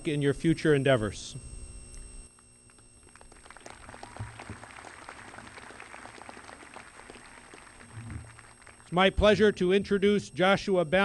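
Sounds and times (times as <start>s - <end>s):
audience applause: 3.0s - 8.9s.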